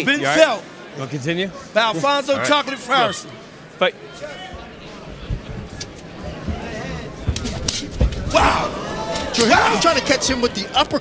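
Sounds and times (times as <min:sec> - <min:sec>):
crowd shouting: 0:08.0 - 0:10.8.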